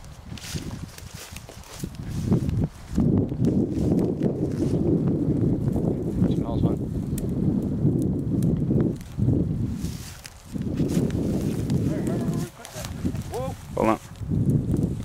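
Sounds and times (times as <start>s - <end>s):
footsteps through dry grass: 0.0s - 6.1s, 8.8s - 15.0s
low rumble on microphone: 0.0s - 15.0s.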